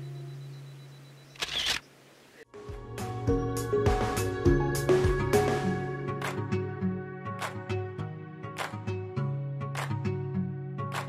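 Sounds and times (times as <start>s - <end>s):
camera shutter click: 1.4s - 1.9s.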